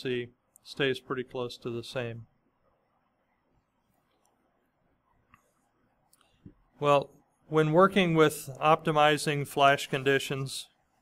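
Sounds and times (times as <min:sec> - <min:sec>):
man speaking: 0:00.0 - 0:02.4, 0:06.8 - 0:10.8.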